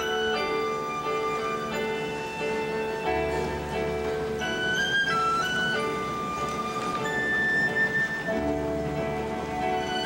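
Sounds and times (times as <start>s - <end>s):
slow orchestral music: 0.0s - 10.0s.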